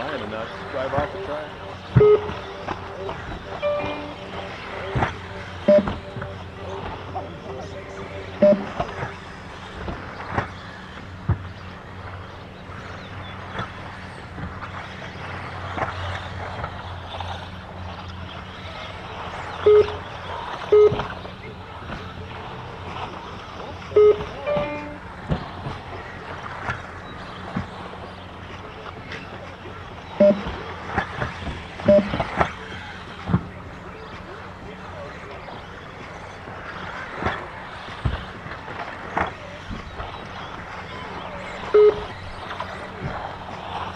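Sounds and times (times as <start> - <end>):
crowd chatter: 0.0 - 9.6
short loud beeps: 1.6 - 9.2, 19.7 - 20.0, 20.7 - 21.1, 24.0 - 25.0, 30.2 - 30.6, 31.9 - 32.3, 41.8 - 42.1.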